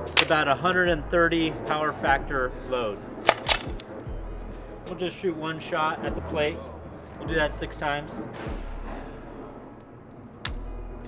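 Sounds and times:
rifle metallic clacks: 0.0 - 0.4, 3.2 - 3.9.

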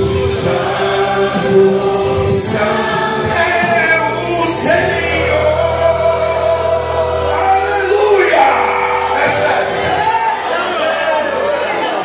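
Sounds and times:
voices singing a hymn: 0.0 - 11.2.

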